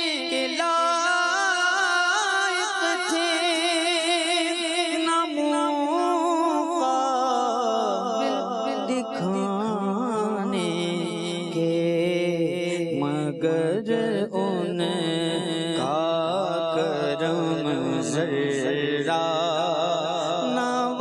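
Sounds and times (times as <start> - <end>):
man singing into a microphone: 0.0 - 21.0.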